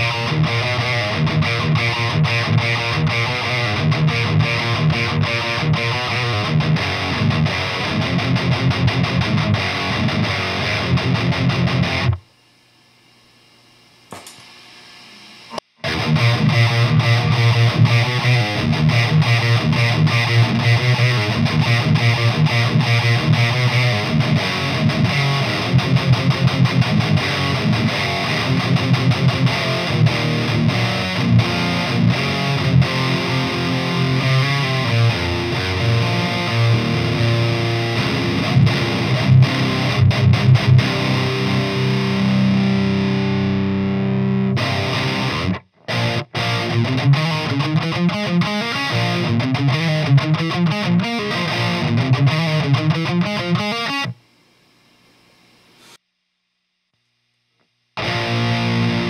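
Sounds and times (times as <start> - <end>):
distorted metal guitar riffing: 0.0 - 12.2, 15.5 - 54.2, 58.0 - 59.0.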